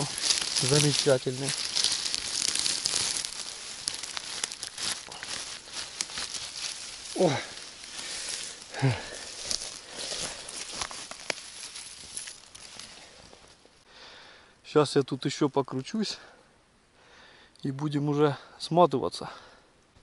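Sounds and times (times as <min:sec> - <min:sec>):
grass and twigs rustling: 0:00.0 - 0:13.9
man's short vocal sounds: 0:08.7 - 0:09.2.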